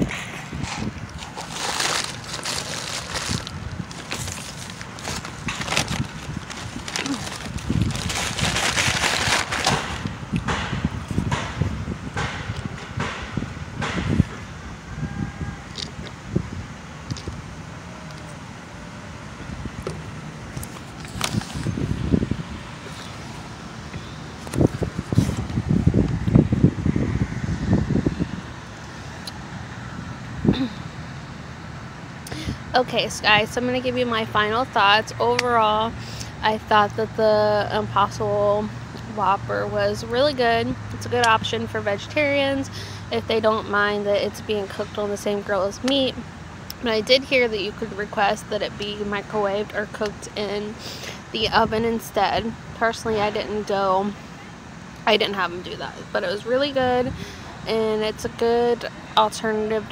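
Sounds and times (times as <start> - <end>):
paper wrapper rustling: 1.2 - 10.0, 20.7 - 21.7.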